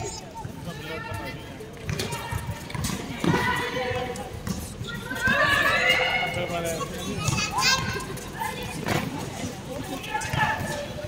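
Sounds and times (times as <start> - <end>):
women and girls shouting: 5.0 - 6.3.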